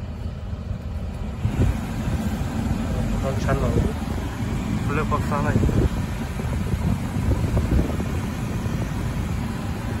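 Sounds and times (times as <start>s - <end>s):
air conditioning blower hissing: 0.0s - 10.0s.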